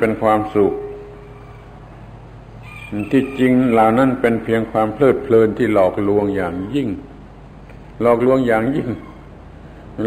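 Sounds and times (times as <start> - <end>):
tape hiss and hum: 0.0 - 10.0.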